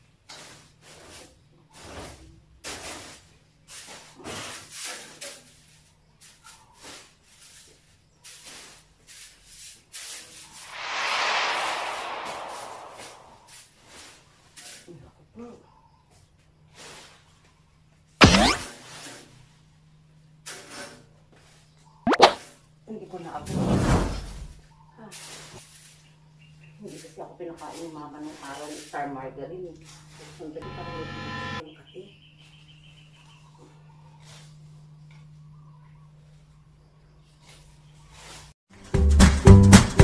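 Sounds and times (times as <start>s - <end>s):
cartoon rising plop: 18.2s - 18.6s, 22.1s - 22.4s.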